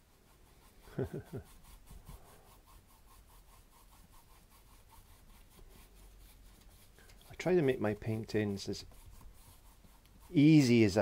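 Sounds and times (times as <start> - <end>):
paintbrush rubbing on canvas: 0.0 - 11.0.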